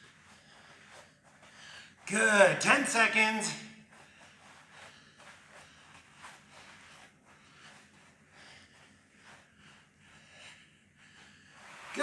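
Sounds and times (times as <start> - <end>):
light breathing: 0.0 - 2.0, 3.9 - 12.0
soft scuffs on artificial turf: 0.0 - 10.5, 11.2 - 12.0.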